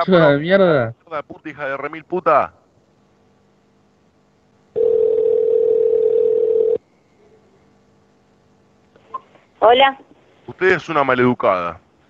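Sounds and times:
telephone line beep: 0:04.8 - 0:06.8.

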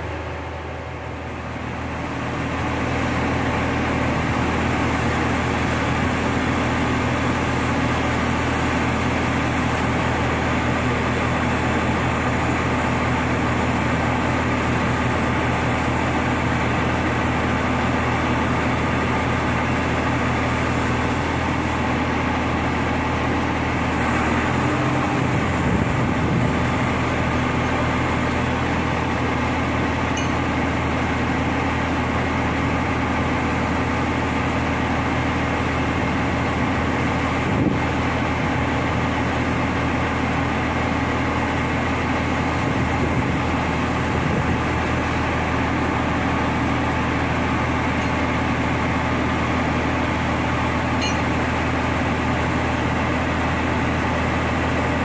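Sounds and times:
truck crane diesel engine running: 0:00.0 - 0:55.0.

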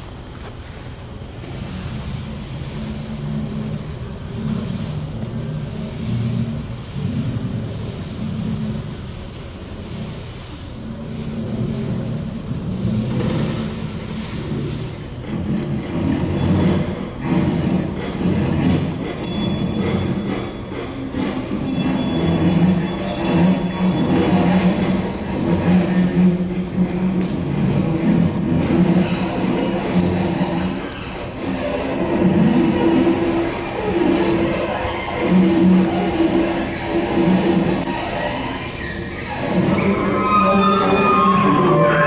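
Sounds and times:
short high ringing tones: 0:19.2 - 0:20.8, 0:21.6 - 0:24.7.

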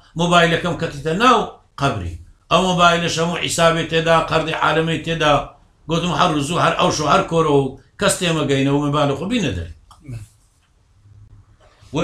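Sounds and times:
man speaking: 0:00.1 - 0:10.3.

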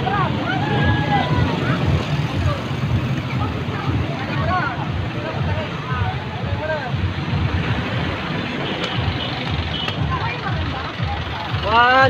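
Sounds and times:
people's voices: 0:00.0 - 0:12.0
vehicle engines rumbling: 0:00.0 - 0:12.0.

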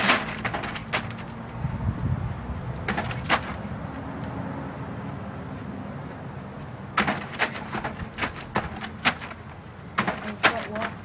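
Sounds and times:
steady low rumble: 0:01.5 - 0:03.0.

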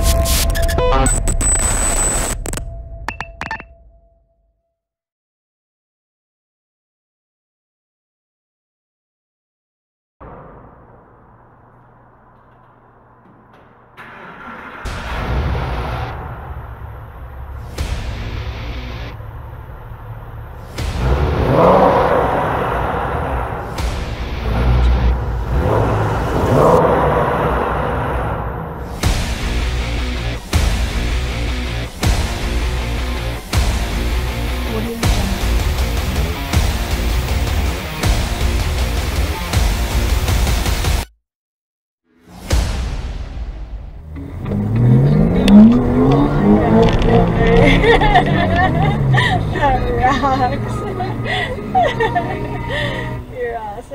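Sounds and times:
car engine rumbling and revving: 0:10.2 - 0:40.6, 0:43.7 - 0:53.9
voices: 0:34.7 - 0:35.6, 0:45.3 - 0:53.9.

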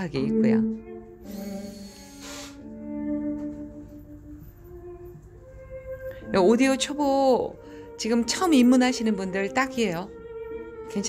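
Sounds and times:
slow classical string music: 0:00.0 - 0:11.0.

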